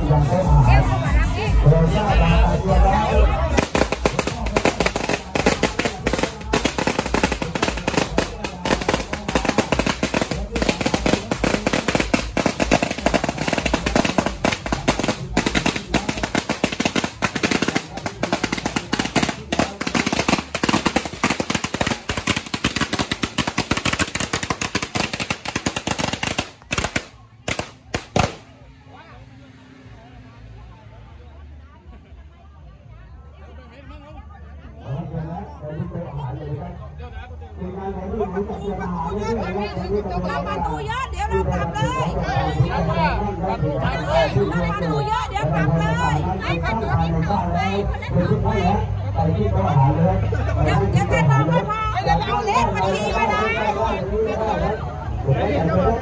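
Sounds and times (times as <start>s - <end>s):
firecrackers crackling: 3.4s - 28.7s.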